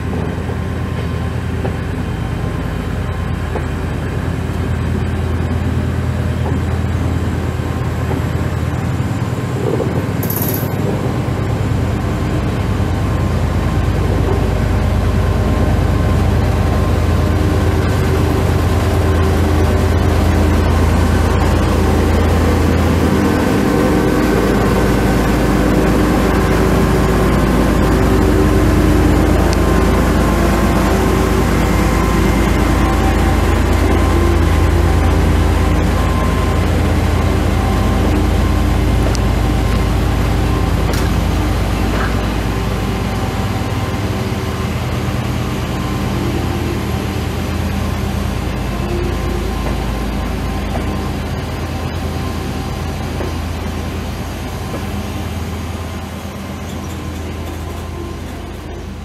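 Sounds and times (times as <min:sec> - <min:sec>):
diesel locomotive engine droning: 0:00.0 - 0:59.0.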